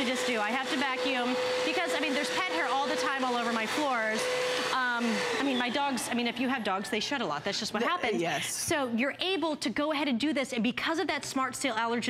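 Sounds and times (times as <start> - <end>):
vacuum cleaner whining: 0.0 - 8.4.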